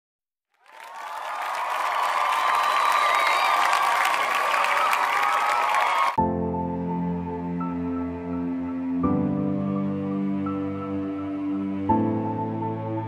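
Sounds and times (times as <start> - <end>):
crowd applauding and cheering: 0.6 - 6.2.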